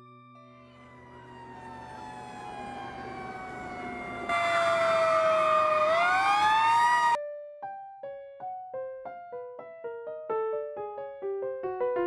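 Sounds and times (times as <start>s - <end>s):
fire engine siren wailing: 0.4s - 7.2s.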